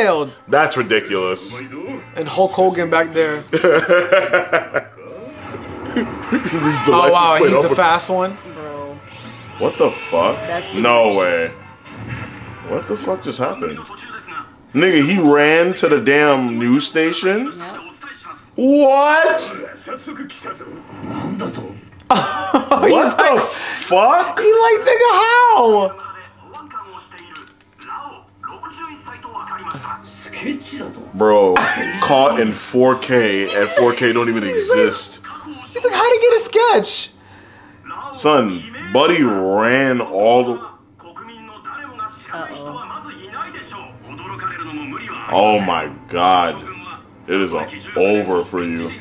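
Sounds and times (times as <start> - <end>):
laughter: 3.5 - 5.0, 22.1 - 23.2, 31.6 - 32.4
voices: 4.0 - 12.0
faint rising sweep: 4.9 - 13.6.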